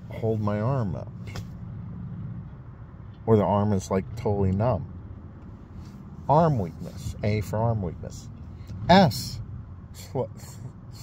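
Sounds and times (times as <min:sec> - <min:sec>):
low hum in car cabin: 0:00.0 - 0:11.0.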